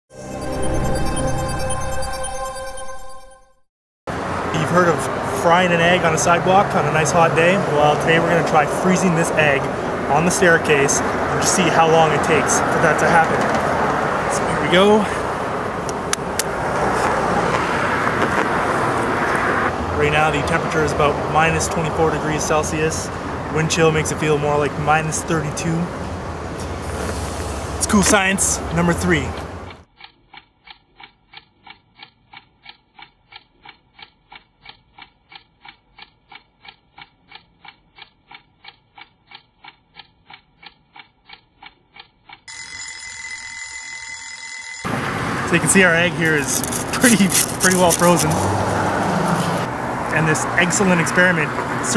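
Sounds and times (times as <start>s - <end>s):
alarm ringing: 0.1s - 3.6s, 42.5s - 48.3s
city traffic noise: 4.1s - 29.9s, 44.6s - 51.9s
clock ticking: 27.8s - 43.6s, 45.6s - 48.4s.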